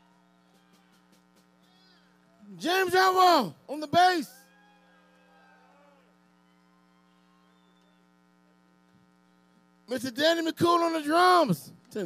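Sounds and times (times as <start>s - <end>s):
electrical mains hum: 0.0s - 12.0s
man's loud voice: 2.4s - 4.4s, 9.9s - 12.0s.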